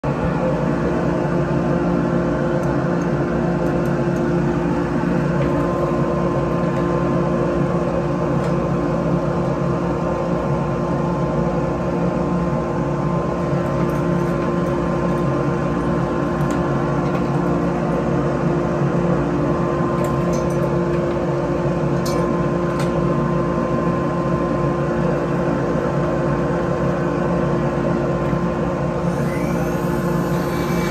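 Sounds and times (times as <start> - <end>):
machine motor humming: 29.0 - 30.9.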